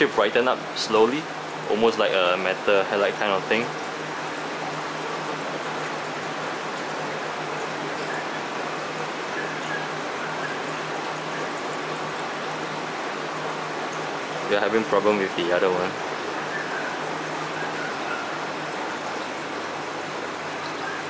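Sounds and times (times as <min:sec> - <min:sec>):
low pump hum: 0:00.0 - 0:21.0.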